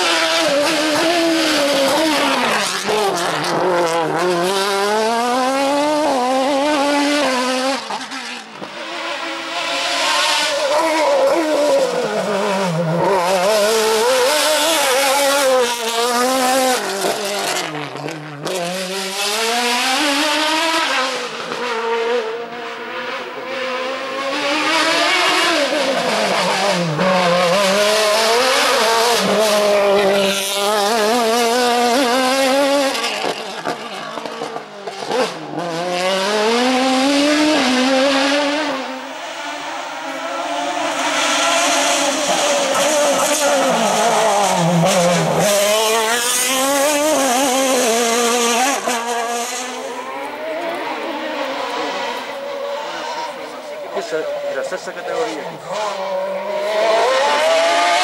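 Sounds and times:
race car engine revving: 0:00.0 - 0:58.0.

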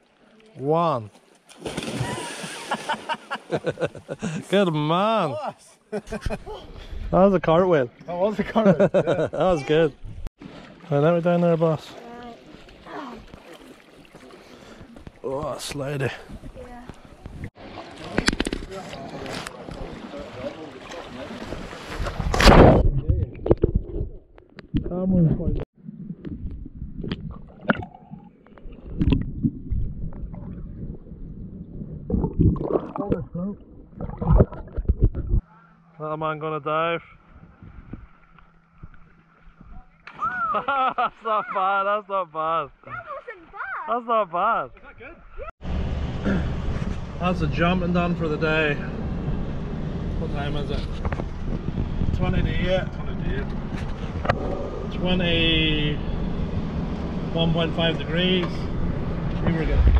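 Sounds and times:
loud splash into water: 0:01.5 - 0:03.2, 0:19.8 - 0:23.0
muffled underwater bubbling: 0:25.9 - 0:35.4
wind buffeting microphone: 0:37.2 - 0:38.2, 0:49.1 - 0:55.4
car engine and tyres rumbling: 0:45.6 - 0:59.9.

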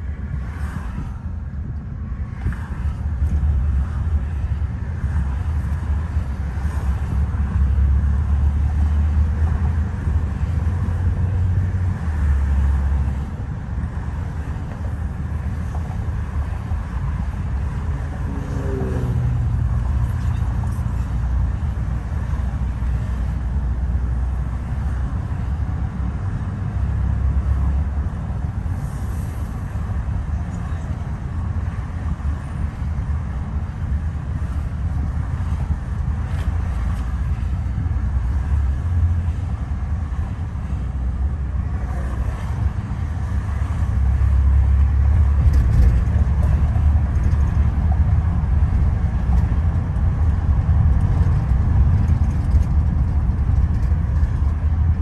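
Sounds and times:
car cabin road noise: 0:00.0 - 0:55.0.

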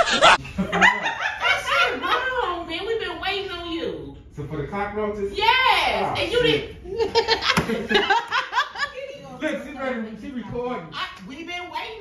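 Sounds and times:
person laughing in bursts: 0:00.0 - 0:01.4.

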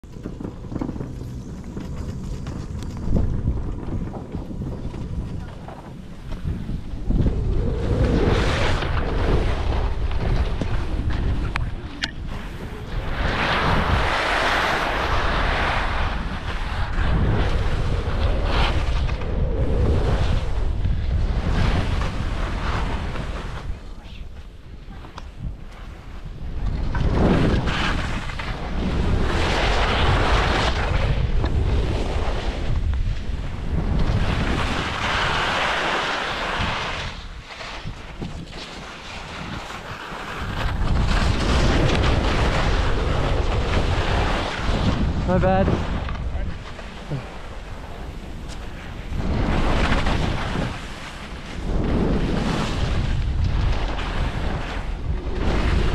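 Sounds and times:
wind buffeting microphone: 0:00.0 - 0:55.9
skis hissing through snow: 0:12.3 - 0:17.4, 0:34.6 - 0:37.6.

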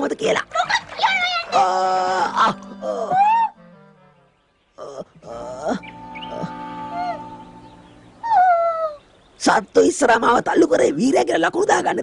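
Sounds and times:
background music: 0:00.0 - 0:08.6
falling musical notes: 0:05.7 - 0:08.8.

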